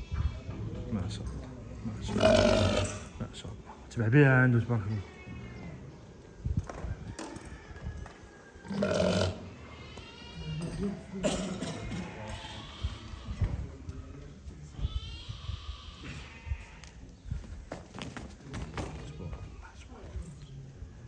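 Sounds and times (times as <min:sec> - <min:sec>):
ram grunting: 0:02.1 - 0:03.0, 0:08.7 - 0:09.4
faint background voices: 0:04.6 - 0:21.0.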